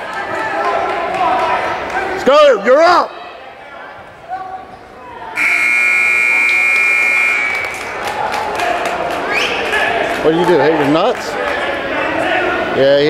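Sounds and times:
electronic buzzer tone: 5.4 - 7.6.

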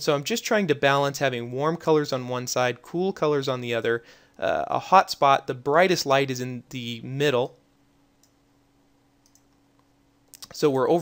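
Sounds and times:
low steady hum: 0.0 - 11.0
computer mouse clicks: 8.2 - 8.4, 9.2 - 10.6.

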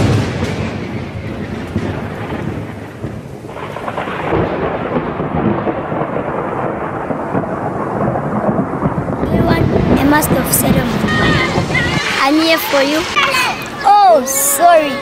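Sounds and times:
thunderstorm with rain: 0.0 - 15.0.

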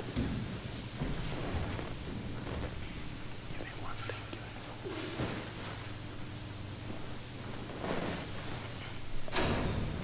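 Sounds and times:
steady hiss: 0.0 - 10.0
faint whispered speech: 3.5 - 5.2.

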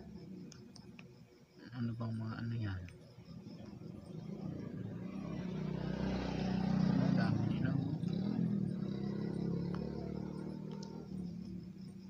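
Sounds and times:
passing vehicle engine hum: 3.3 - 12.0.

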